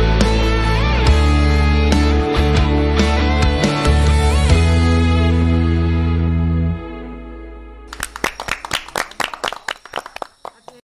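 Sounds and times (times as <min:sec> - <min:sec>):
people clapping: 0:07.9 - 0:10.9.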